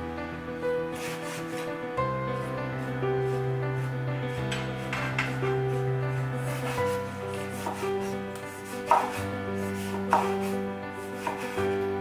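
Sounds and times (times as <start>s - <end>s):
soft background music: 0.0s - 12.0s
knife cutting on wooden board: 1.0s - 1.7s, 6.5s - 11.6s.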